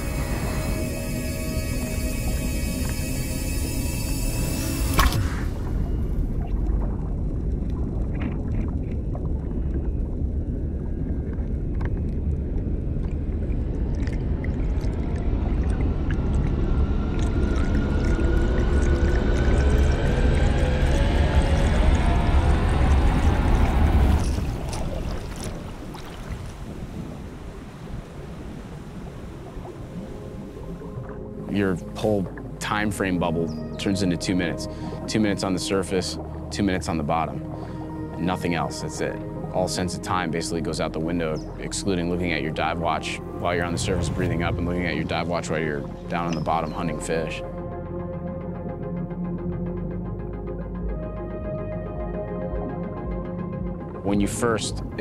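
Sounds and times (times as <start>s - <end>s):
soundtrack music: 0.0s - 7.3s, 30.6s - 55.0s
slow rising tone: 0.0s - 26.0s, 42.9s - 46.4s
deep underwater rumble: 0.0s - 55.0s.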